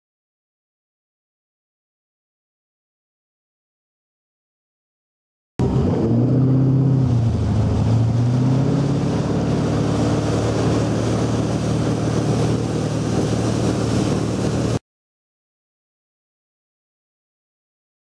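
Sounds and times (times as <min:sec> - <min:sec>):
boat engine running: 0:05.6 - 0:14.8
water rushing along hull: 0:05.6 - 0:14.8.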